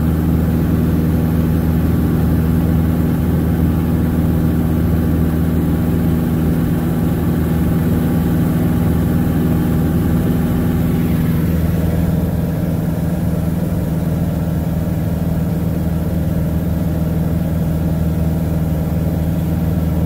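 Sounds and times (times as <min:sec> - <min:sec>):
airplane engine droning: 0:00.0 - 0:20.0.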